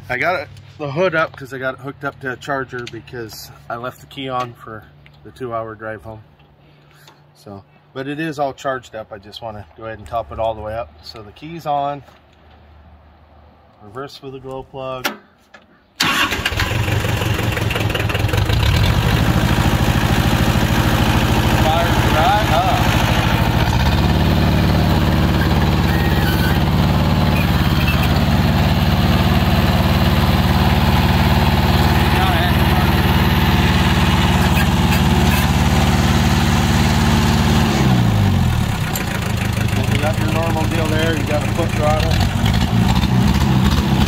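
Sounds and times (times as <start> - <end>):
diesel tractor engine running: 16.0 - 44.0.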